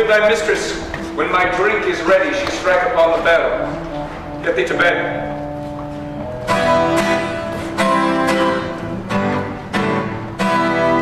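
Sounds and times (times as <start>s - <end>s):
live band playing chords: 0.0s - 11.0s.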